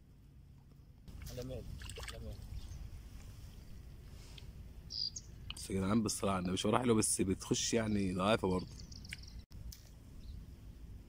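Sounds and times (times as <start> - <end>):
fish splashing in water: 1.8 - 2.3.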